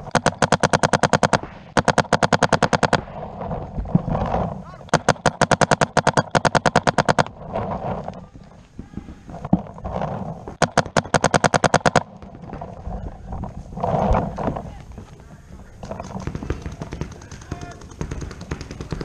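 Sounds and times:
paintball marker firing: 0.0 - 3.2, 4.9 - 7.3, 10.6 - 12.7, 14.2 - 19.0.

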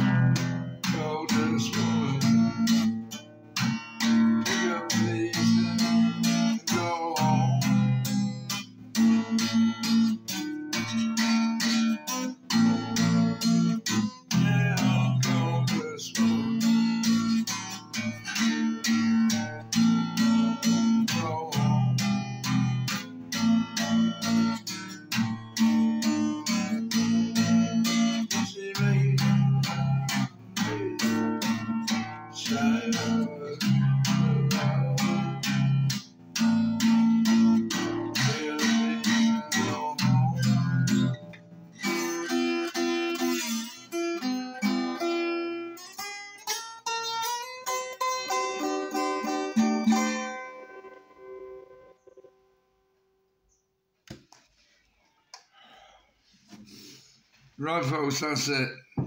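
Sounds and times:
acoustic guitar strumming: 0.0 - 53.0, 56.3 - 59.0.

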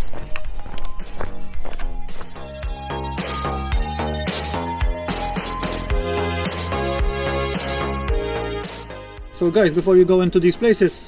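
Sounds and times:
background music with knocking beat: 0.2 - 9.3.

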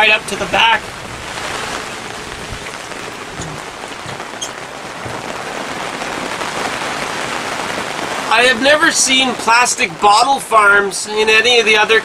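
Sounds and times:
raindrop ticks: 0.0 - 10.5
rain shower: 0.0 - 12.0.

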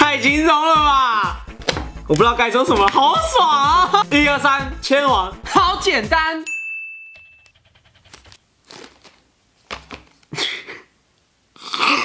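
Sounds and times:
chime tone: 6.5 - 7.5
plastic packet crinkling: 7.8 - 10.3.

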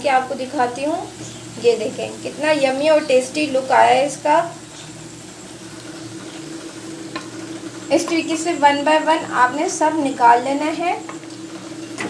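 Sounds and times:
snacks sizzling in hot oil: 0.0 - 12.0.

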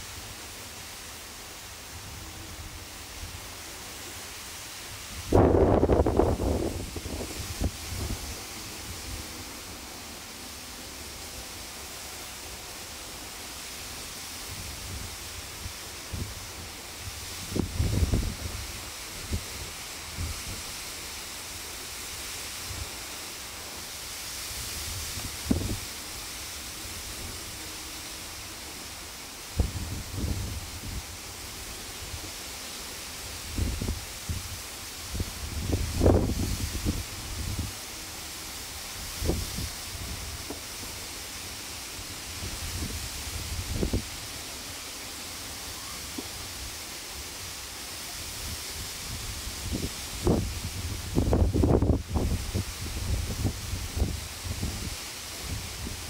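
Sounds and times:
steady outdoor hiss: 0.0 - 56.0
wind buffeting microphone: 5.2 - 9.1, 17.4 - 18.7, 35.1 - 37.7, 49.1 - 54.9.

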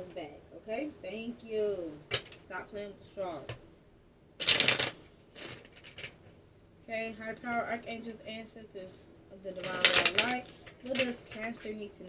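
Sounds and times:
woman's voice: 0.0 - 3.6, 6.9 - 12.0
cards rustling: 4.4 - 6.2, 9.6 - 11.8.

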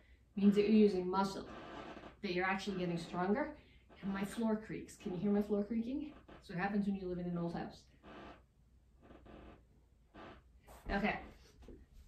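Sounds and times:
wooden floor creaking softly: 9.0 - 12.0.

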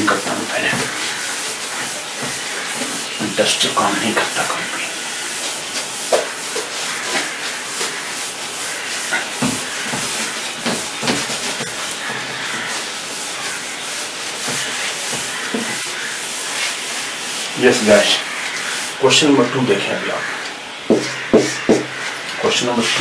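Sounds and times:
cloth wiping whiteboard: 0.0 - 23.0.

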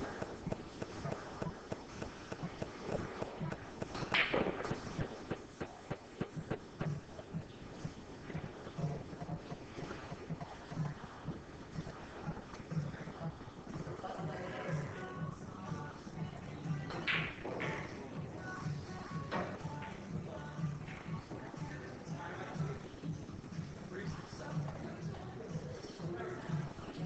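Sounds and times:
soft low thuds: 0.0 - 13.5
pool balls clicking: 0.0 - 23.7.

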